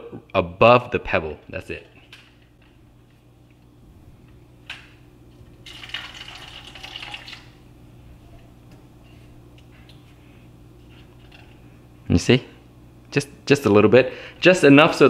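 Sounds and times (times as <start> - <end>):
liquid pouring into container: 5.6 - 7.6.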